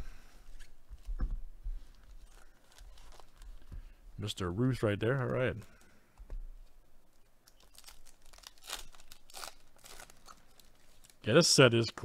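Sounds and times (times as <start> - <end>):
foil wrapper tearing and crinkling: 2.1 - 3.6, 7.5 - 11.4.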